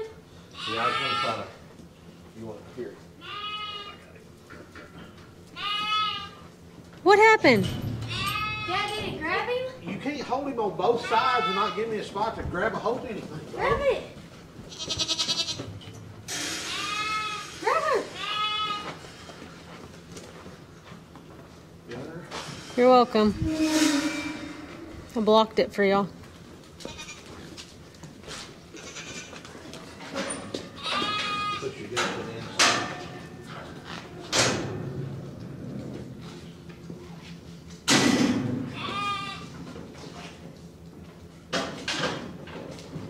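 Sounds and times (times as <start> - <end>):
goat bleating: 0.5 - 1.6, 3.2 - 4.2, 5.5 - 6.5, 8.1 - 9.0, 10.9 - 11.9, 14.7 - 15.8, 16.6 - 19.0, 26.8 - 27.4, 28.7 - 29.5, 30.7 - 31.8, 38.7 - 39.6.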